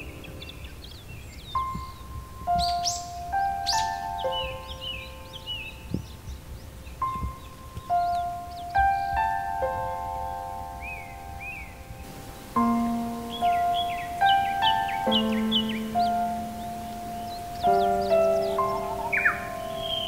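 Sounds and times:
birds chirping: 0.0s - 20.0s
gentle solo piano: 0.0s - 20.0s.

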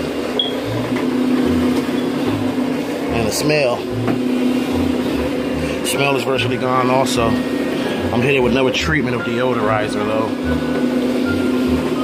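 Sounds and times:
carpet scrubber motor hum: 0.0s - 12.0s.

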